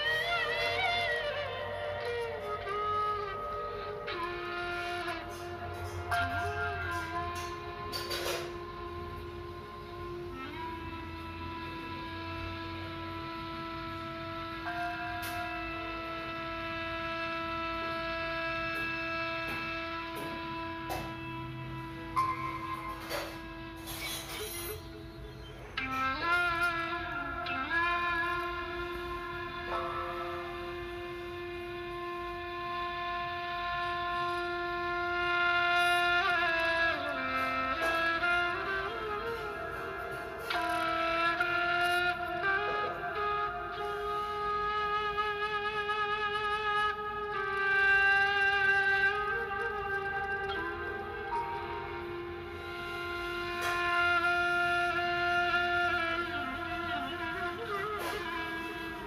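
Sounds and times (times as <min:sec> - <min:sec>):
wind instrument holding long note: 0:00.0 - 0:59.0.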